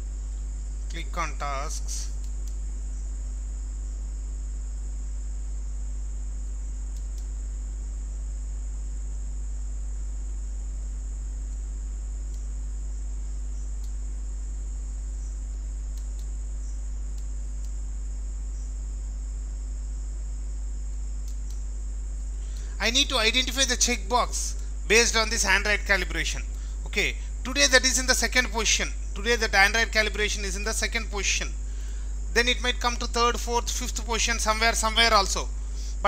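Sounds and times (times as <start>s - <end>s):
electrical hum: 0.0s - 36.0s
faint clicks: 2.1s - 2.6s, 6.9s - 7.4s, 12.3s - 12.5s, 13.8s - 14.0s, 15.5s - 17.8s, 20.9s - 22.7s.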